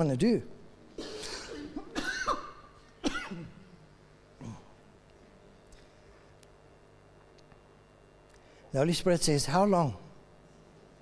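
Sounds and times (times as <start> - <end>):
person coughing: 0.9 - 3.7, 4.4 - 4.8.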